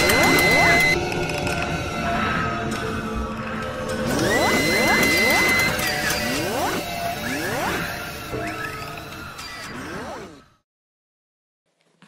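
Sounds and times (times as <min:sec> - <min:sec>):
electronic music: 0:00.0 - 0:01.1, 0:04.0 - 0:09.3.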